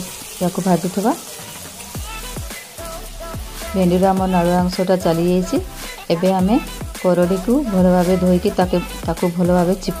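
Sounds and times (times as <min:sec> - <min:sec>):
okra sizzling in oil: 0:00.0 - 0:10.0.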